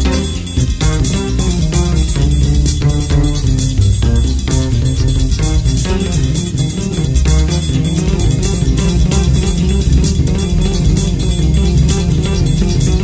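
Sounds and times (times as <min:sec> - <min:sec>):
bass guitar line: 0:00.0 - 0:13.0
cymbal beat: 0:00.0 - 0:13.0
electric guitar: 0:00.0 - 0:13.0.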